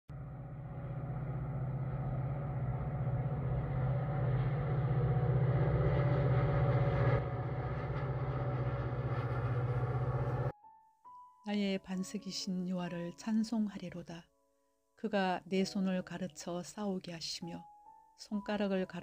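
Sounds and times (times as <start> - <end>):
passing vehicle rumble: 0.1 - 10.6.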